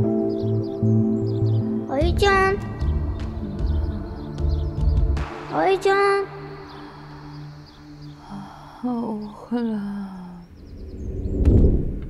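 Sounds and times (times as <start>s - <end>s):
low drone background music: 0.0s - 11.5s.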